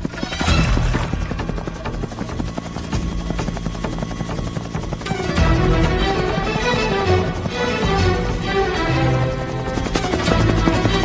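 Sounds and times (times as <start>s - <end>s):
helicopter rotor chopping: 0.0s - 11.0s.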